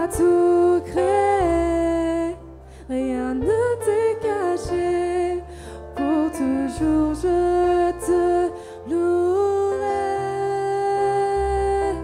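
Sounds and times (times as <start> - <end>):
bass guitar low notes: 0.0 - 12.0
woman singing worship song: 0.0 - 12.0.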